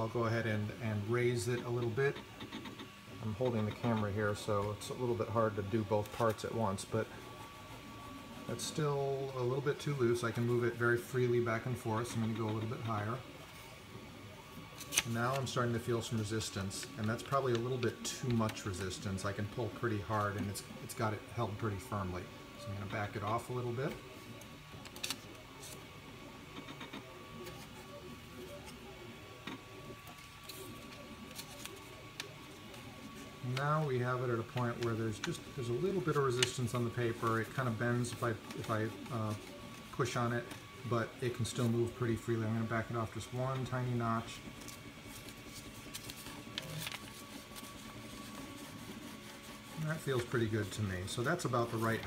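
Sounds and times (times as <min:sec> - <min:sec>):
printer humming: 0:00.0 - 0:52.0
paper clicks and rustles: 0:14.6 - 0:21.0, 0:22.8 - 0:28.8, 0:29.4 - 0:52.0.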